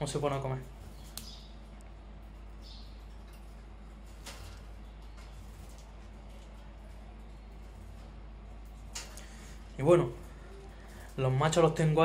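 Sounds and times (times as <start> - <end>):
steady low hum: 0.0 - 12.0
bird husking seeds clicks: 1.1 - 1.4.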